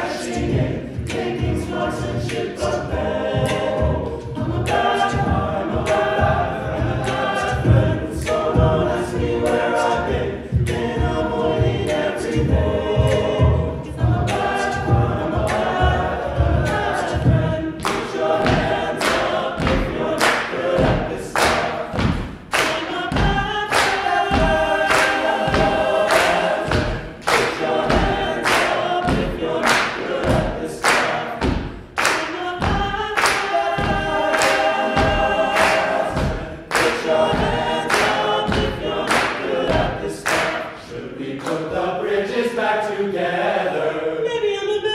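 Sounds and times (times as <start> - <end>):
male a cappella group singing: 0.0 - 44.9
vocal percussion beat: 0.0 - 44.9.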